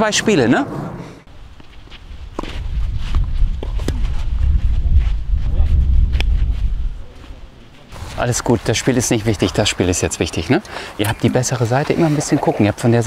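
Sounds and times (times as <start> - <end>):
low rumble on microphone: 2.1 - 8.2.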